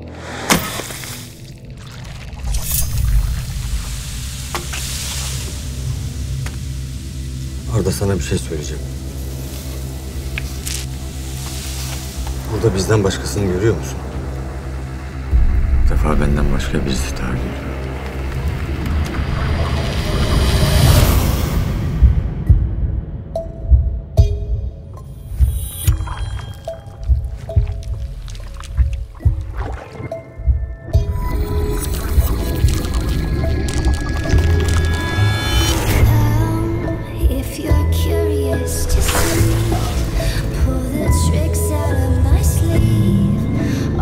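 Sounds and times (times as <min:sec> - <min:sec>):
low rumbling drone: 0:00.0 - 0:44.0
hissing noise: 0:02.4 - 0:12.5.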